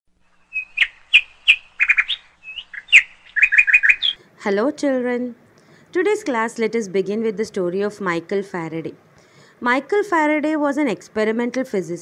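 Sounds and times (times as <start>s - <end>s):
bird chirping: 0.2s - 4.2s.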